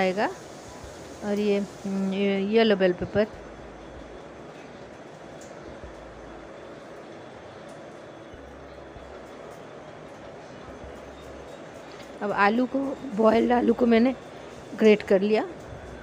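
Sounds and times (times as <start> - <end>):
steady background hiss: 0.0 - 16.0.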